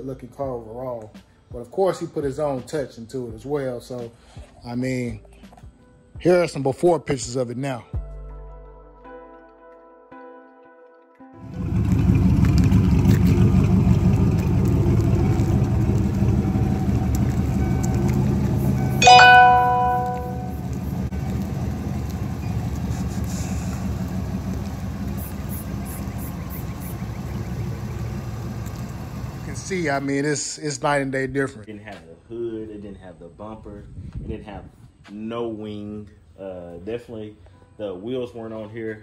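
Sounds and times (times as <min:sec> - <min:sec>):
car engine idling: 0:11.4 - 0:30.0
loud ringing tone: 0:19.0 - 0:20.7.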